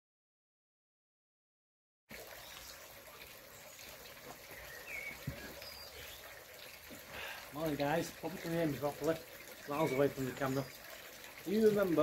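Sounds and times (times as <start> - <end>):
steady outdoor hiss: 2.1 - 12.0.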